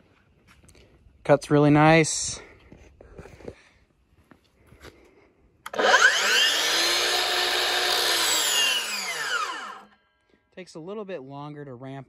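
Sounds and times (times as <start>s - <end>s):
miter saw motor whine: 5.7s - 10.0s.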